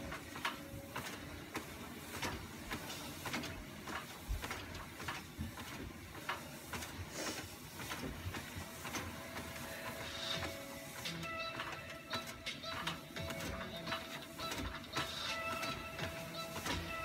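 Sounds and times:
footfalls on treadmill belt: 0:00.0 - 0:17.0
treadmill high whine: 0:00.0 - 0:17.0.

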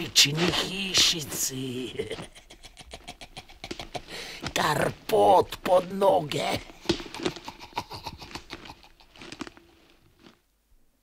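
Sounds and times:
hurried footsteps: 0:00.0 - 0:10.4.

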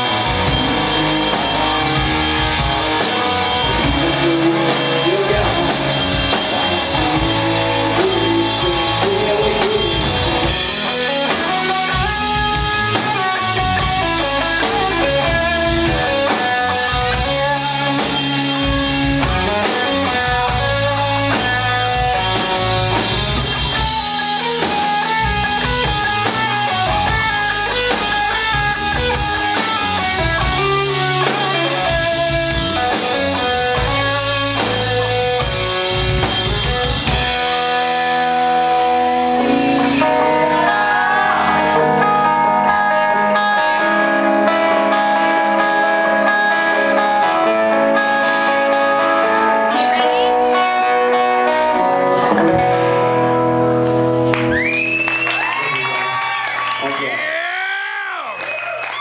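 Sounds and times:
drum kit: 0:00.0 - 0:46.0
electric bass: 0:00.0 - 0:55.5
electric guitar: 0:00.0 - 0:57.4.

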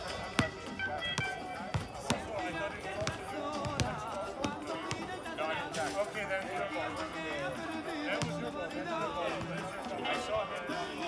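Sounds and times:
basketball bouncing on court: 0:00.0 - 0:05.3, 0:08.2 - 0:08.4.

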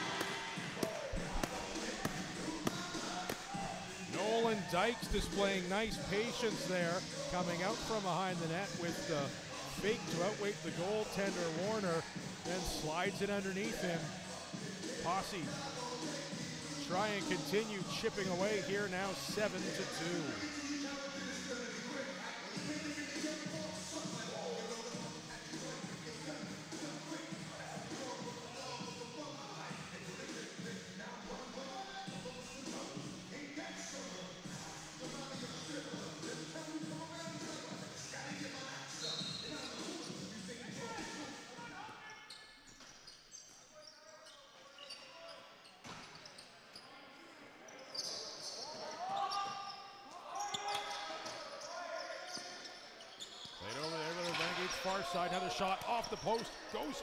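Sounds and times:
music over loudspeakers: 0:00.0 - 0:41.4
crowd voices: 0:00.0 - 0:41.7, 0:53.6 - 0:57.0.

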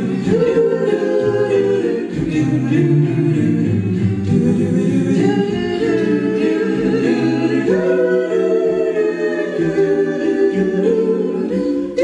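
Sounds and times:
a cappella group singing harmony: 0:00.0 - 0:12.0.

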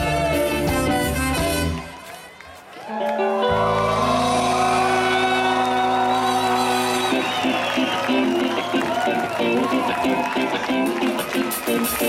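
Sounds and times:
ska rock band playing: 0:00.0 - 0:02.0, 0:06.5 - 0:12.0.

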